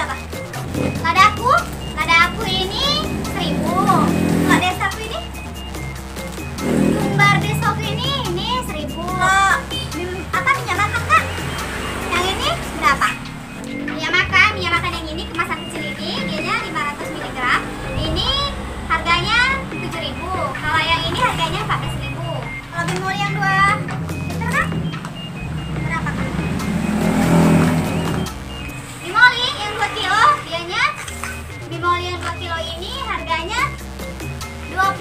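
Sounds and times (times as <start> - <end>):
background music: 0.0 - 35.0
vehicle passing by: 0.0 - 35.0
woman speaking in comic voice: 7.0 - 11.3, 13.9 - 24.7.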